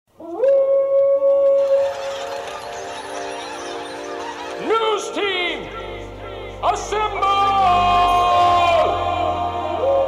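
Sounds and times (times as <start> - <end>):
sustained musical tones: 1.6 - 10.0.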